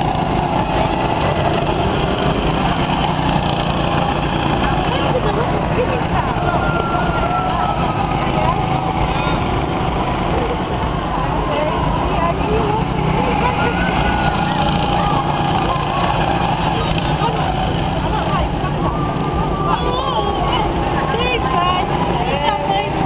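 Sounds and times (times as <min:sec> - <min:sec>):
go-kart engines running: 0:00.0 - 0:23.0
indistinct voices: 0:00.0 - 0:23.0.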